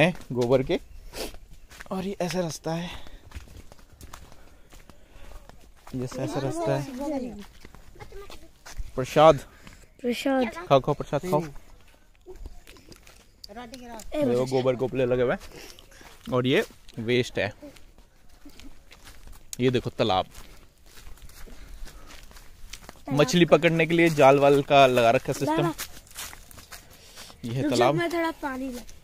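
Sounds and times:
footsteps on dirt path: 0:00.0 - 0:29.0.

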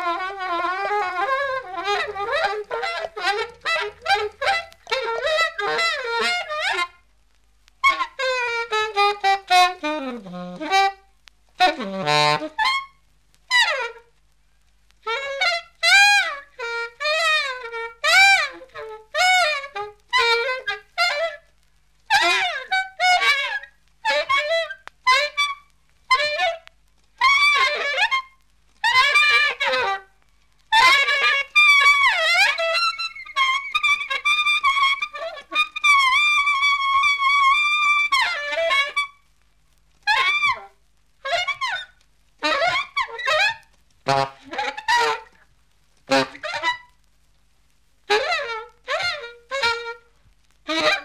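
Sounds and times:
free-jazz horn phrases: 0:00.0 - 0:07.0, 0:07.8 - 0:14.2, 0:15.0 - 0:21.5, 0:22.1 - 0:39.2, 0:40.0 - 0:45.4, 0:46.0 - 0:47.0, 0:48.1 - 0:51.0.

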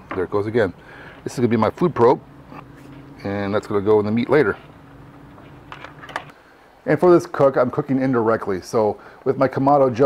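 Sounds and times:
faint steady hum: 0:00.0 - 0:10.0
cable handling noise: 0:05.3 - 0:06.3.

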